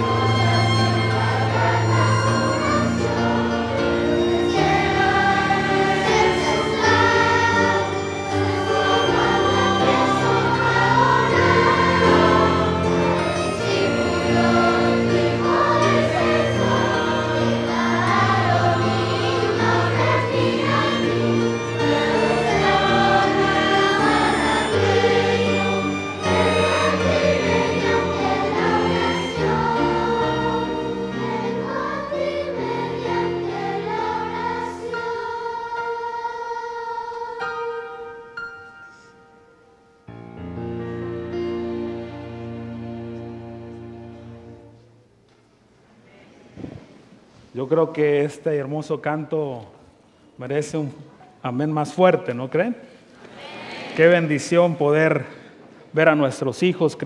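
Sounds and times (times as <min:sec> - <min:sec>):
string ensemble: 0:00.0 - 0:35.8, 0:40.3 - 0:44.9
children's choir singing: 0:00.0 - 0:38.2, 0:53.2 - 0:55.2.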